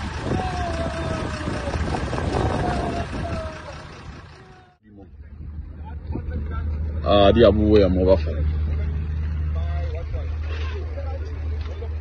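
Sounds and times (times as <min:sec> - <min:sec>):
faint voices: 0:00.0 - 0:07.0
vehicle engine idling: 0:00.0 - 0:12.0.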